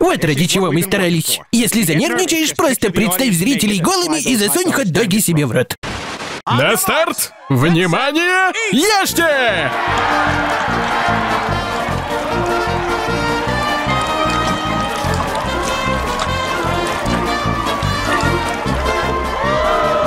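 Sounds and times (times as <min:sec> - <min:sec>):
soundtrack music with steady beat: 0:09.6 - 0:20.0.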